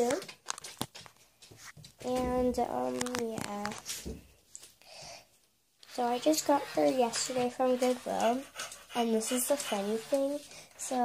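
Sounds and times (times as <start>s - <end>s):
child speaking: 0.0s - 0.3s, 2.0s - 3.8s, 5.9s - 11.0s.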